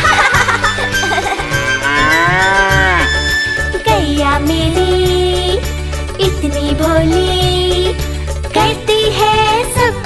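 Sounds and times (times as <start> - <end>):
children's song with bass line: 0.0 - 10.0
cow mooing: 1.2 - 3.4.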